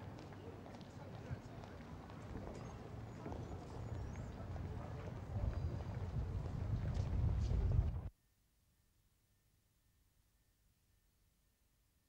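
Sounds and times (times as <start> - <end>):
faint voices: 0.0 - 8.0.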